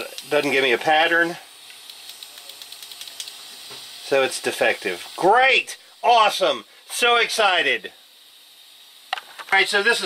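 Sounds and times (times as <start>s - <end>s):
steady hiss: 0.0s - 10.0s
fuel injector clicking: 1.7s - 3.4s.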